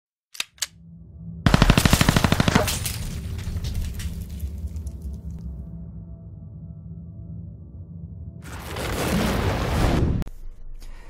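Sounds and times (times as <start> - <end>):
low rumbling music: 0.5 - 11.0
automatic gunfire burst: 1.5 - 2.8.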